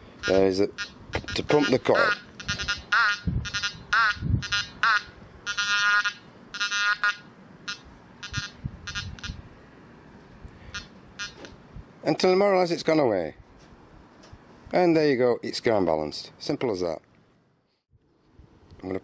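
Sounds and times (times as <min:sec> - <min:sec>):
metal detector electronic tones: 0:00.2 - 0:09.4, 0:10.7 - 0:11.5.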